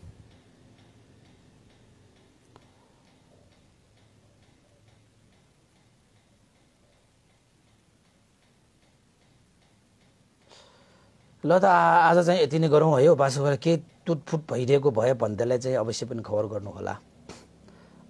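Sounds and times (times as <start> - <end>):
faint ticking: 0.0 - 18.0.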